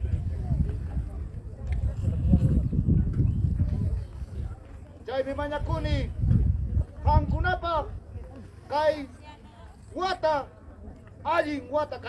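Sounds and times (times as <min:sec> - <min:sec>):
wind buffeting microphone: 0:00.0 - 0:08.3.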